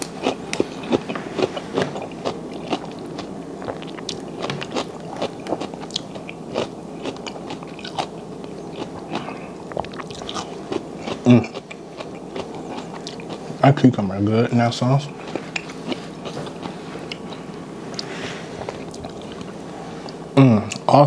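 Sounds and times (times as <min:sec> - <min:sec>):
chewing: 0:00.0 - 0:13.6, 0:15.0 - 0:20.9.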